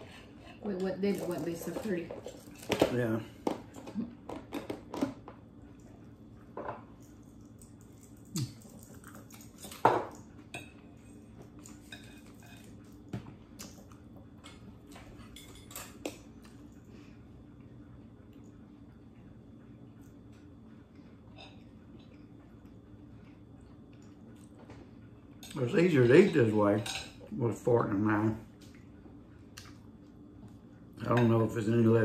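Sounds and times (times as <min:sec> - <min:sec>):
faint steady hum: 0:00.0 - 0:32.0.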